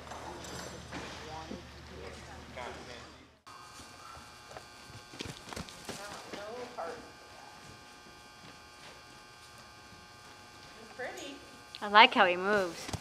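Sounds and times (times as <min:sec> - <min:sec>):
steady low hum: 0:00.0 - 0:13.0
horse hoofbeats on dirt: 0:04.0 - 0:06.5.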